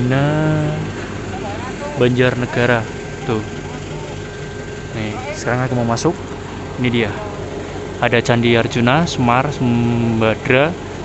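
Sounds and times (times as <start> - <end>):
person speaking: 0.0 - 4.3, 4.9 - 6.2, 6.8 - 10.7
vehicle engine idling: 0.0 - 11.0.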